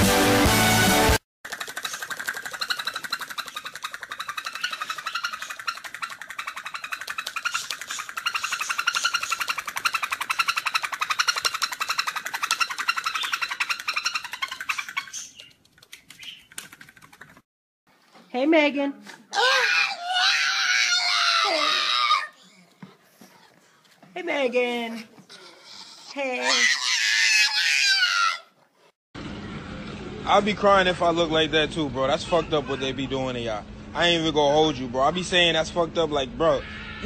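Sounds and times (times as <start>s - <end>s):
toy bird rapid clicking: 1.5s - 17.4s.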